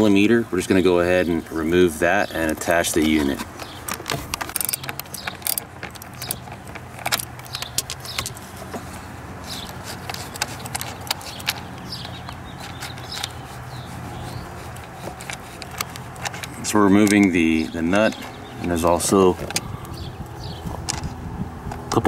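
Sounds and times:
socket wrench metallic clicks: 3.6 - 8.4.

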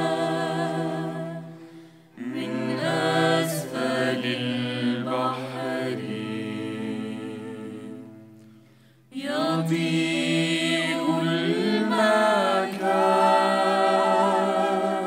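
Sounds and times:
women singing: 0.0 - 1.6, 2.2 - 8.3, 9.1 - 15.0
ney flute: 11.0 - 15.0.

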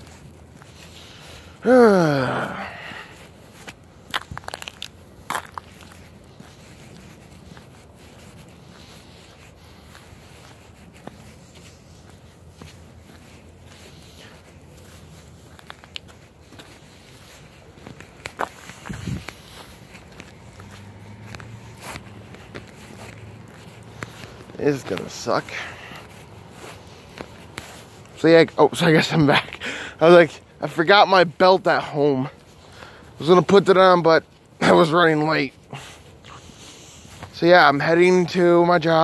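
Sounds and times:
footsteps: 0.0 - 39.0.

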